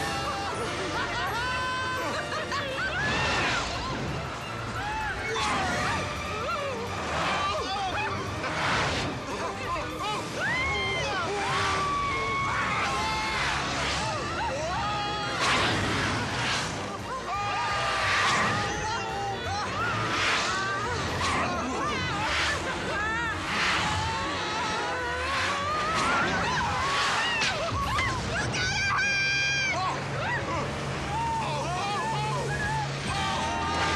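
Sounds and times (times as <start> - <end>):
people shouting and screaming: 0.0 - 33.9
toy race car rushing along track: 2.3 - 33.9.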